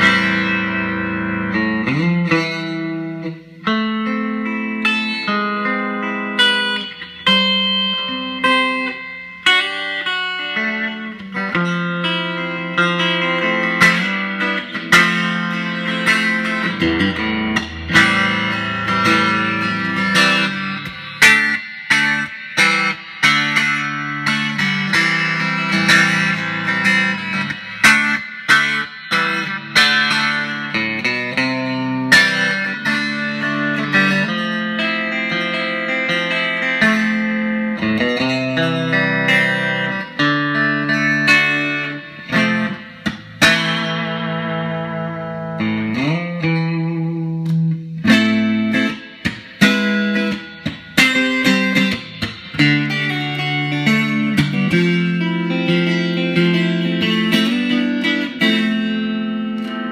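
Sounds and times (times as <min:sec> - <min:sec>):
electric guitar playing: 0:00.0 - 0:59.9.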